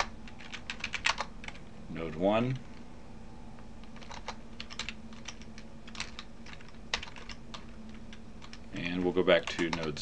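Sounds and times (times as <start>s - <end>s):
keyboard typing: 0.0s - 2.8s, 3.8s - 10.0s
faint steady hum: 0.0s - 10.0s.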